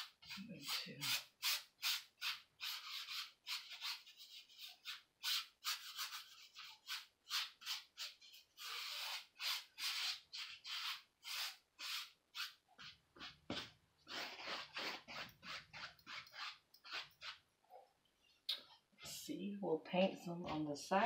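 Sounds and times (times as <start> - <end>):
paintbrush scratching on canvas: 0.0 - 17.4.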